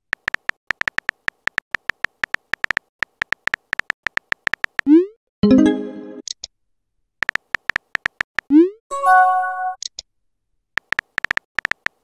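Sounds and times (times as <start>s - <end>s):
keyboard typing clicks: 0.1s - 5.0s, 7.2s - 8.6s, 10.8s - 12.0s.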